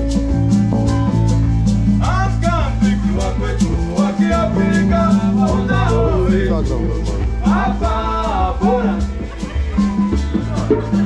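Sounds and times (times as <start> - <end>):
deep bass notes: 0.0 - 11.0
hand drums and percussion: 0.0 - 11.0
person singing: 2.0 - 11.0.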